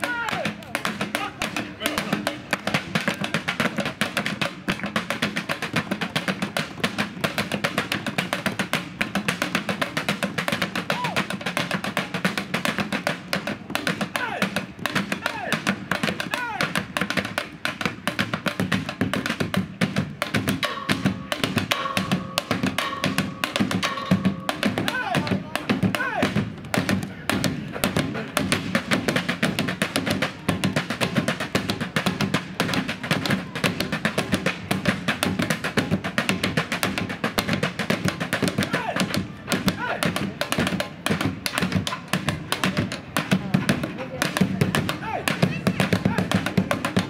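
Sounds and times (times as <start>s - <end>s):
drumsticks beating on barrels: 0.0s - 47.0s
music: 0.1s - 47.0s.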